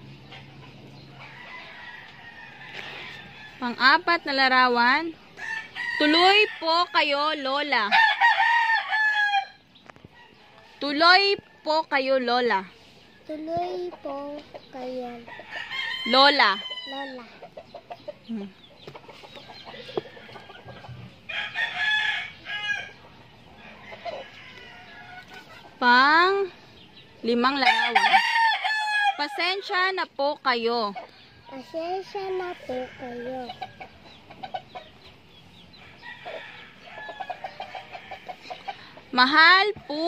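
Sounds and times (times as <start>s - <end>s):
chickens clucking: 0.0s - 8.0s, 12.5s - 40.0s
rooster crowing: 5.4s - 7.1s, 7.8s - 9.6s, 21.3s - 23.0s, 27.6s - 29.5s, 35.8s - 38.4s.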